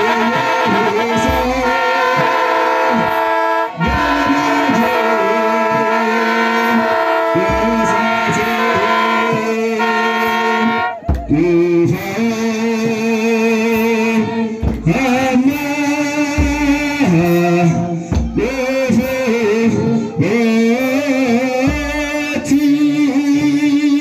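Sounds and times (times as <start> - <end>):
drum beats: 0.0 - 24.0
group chanting a hymn: 0.0 - 24.0.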